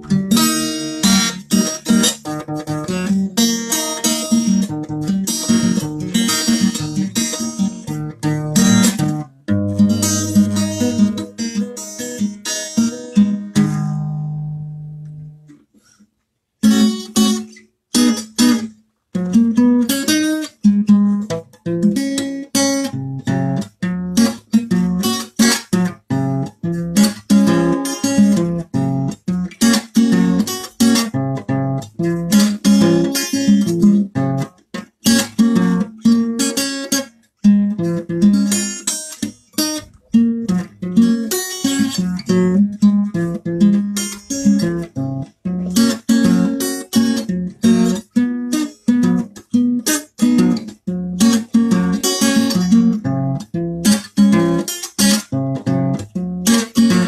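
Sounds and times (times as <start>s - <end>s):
acoustic guitar strumming chords: 0.0s - 15.9s, 16.6s - 57.0s.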